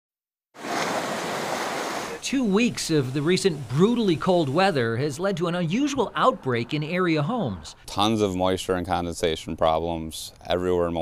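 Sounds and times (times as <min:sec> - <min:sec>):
lake waves breaking on shore: 0:00.6 - 0:04.7.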